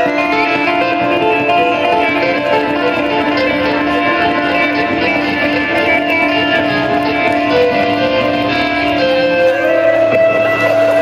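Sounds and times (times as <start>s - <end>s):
electric guitar solo: 0.0s - 11.0s
full band playing: 0.0s - 11.0s.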